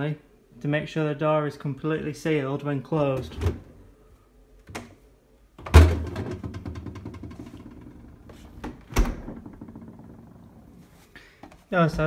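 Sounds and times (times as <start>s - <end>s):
fridge doors shutting: 8.6s - 10.2s.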